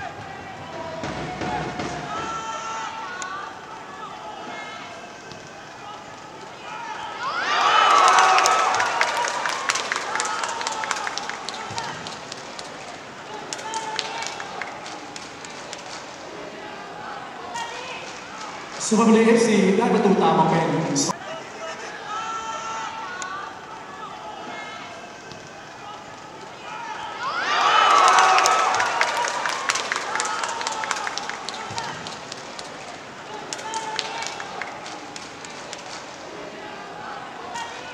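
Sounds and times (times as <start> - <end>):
stadium crowd ambience: 0.0 - 37.9.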